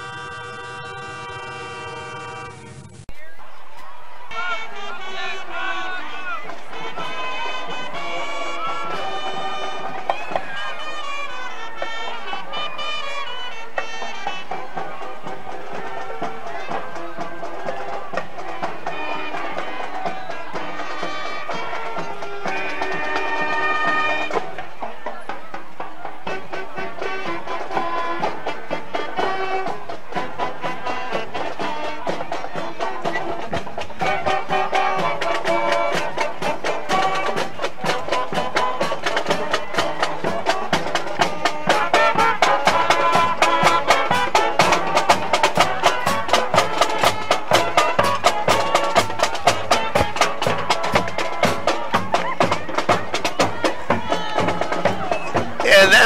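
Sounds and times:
marching band playing: 0:00.0 - 0:56.0
snare and bass drums: 0:13.2 - 0:56.0.

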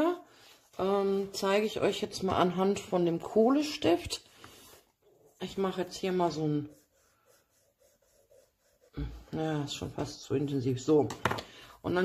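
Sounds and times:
pencil scratching on paper: 0:04.5 - 0:09.8.

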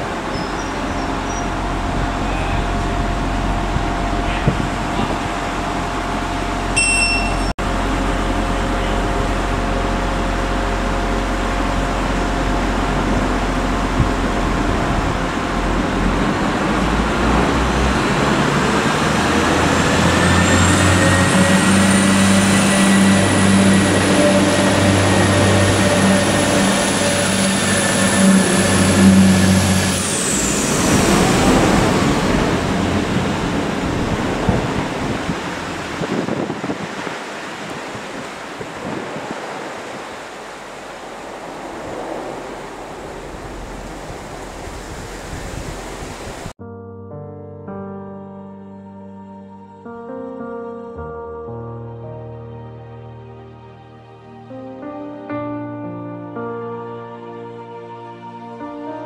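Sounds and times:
diesel train engine revving: 0:00.0 - 0:06.8, 0:07.6 - 0:36.0
high whine: 0:00.0 - 0:36.4.

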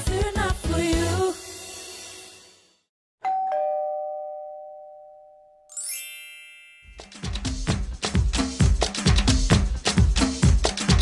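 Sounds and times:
two-tone doorbell chime: 0:03.2 - 0:07.2
rising shimmer of chimes: 0:05.7 - 0:07.0.

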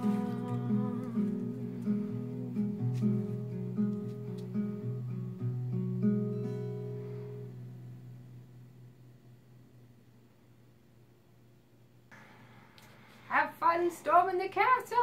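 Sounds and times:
acoustic guitar picking: 0:00.0 - 0:09.3.

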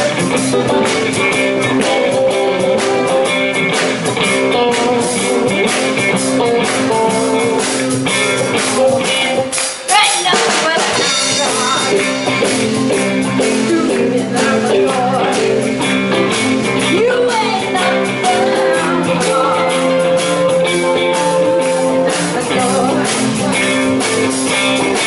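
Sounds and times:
blues band playing: 0:00.0 - 0:25.0
woman singing: 0:09.9 - 0:12.0, 0:16.8 - 0:23.8.

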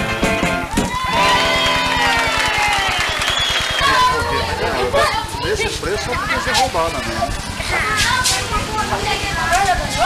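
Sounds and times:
live samba band: 0:00.0 - 0:04.1
crowd cheering: 0:00.5 - 0:07.9.

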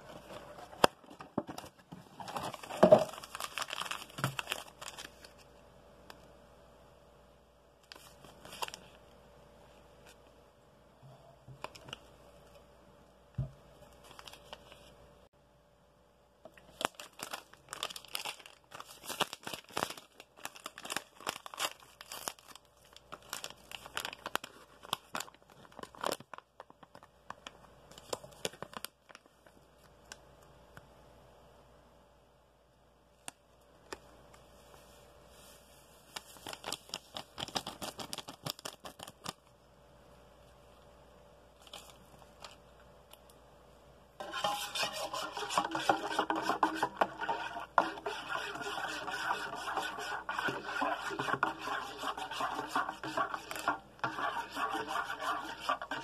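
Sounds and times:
paper packet crinkling and tearing: 0:01.5 - 0:05.5, 0:07.8 - 0:09.0, 0:13.9 - 0:14.9, 0:16.6 - 0:29.4, 0:36.1 - 0:39.5, 0:41.6 - 0:42.6, 0:52.8 - 0:54.4
stirrer scraping metal cup: 0:44.2 - 0:56.0.

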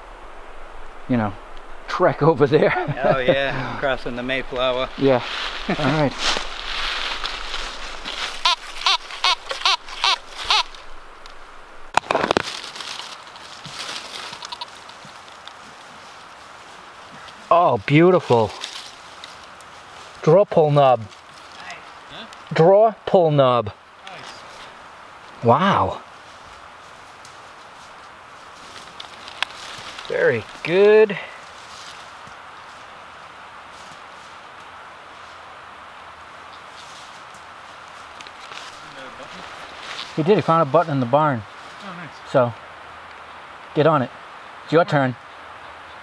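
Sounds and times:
scraping of dirt and dry leaves: 0:00.0 - 0:22.7, 0:24.0 - 0:43.2
low outdoor hiss: 0:00.0 - 0:46.0
voices: 0:01.1 - 0:11.0, 0:17.0 - 0:26.1, 0:29.4 - 0:31.5, 0:38.4 - 0:45.3.

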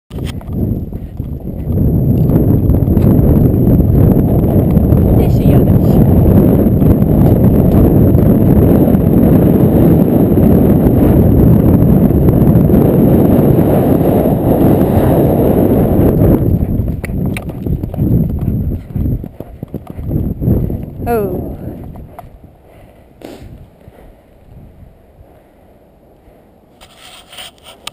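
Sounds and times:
horse hoofbeats: 0:00.1 - 0:09.7, 0:16.0 - 0:24.1
wind rumble on microphone: 0:00.1 - 0:27.9.

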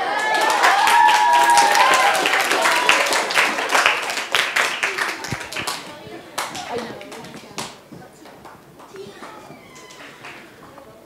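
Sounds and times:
children clapping: 0:00.0 - 0:10.9.

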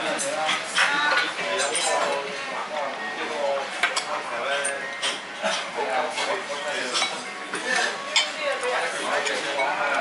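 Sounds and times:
cutlery and dishes clinking: 0:00.1 - 0:02.3, 0:03.8 - 0:10.0.

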